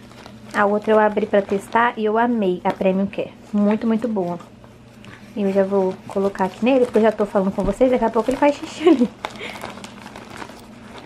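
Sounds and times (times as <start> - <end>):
plastic package crinkling: 0.0 - 2.7, 5.4 - 11.0.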